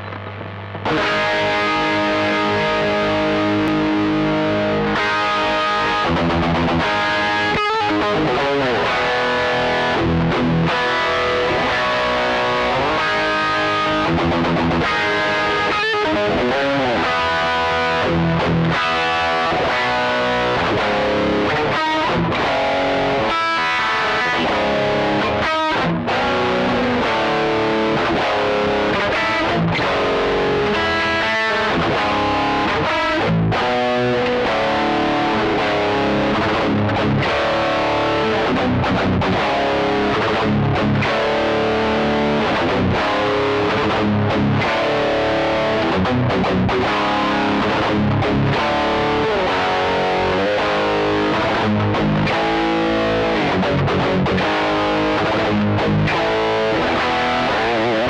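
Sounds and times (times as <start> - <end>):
distorted electric guitar metal riffs: 0.0 - 58.0.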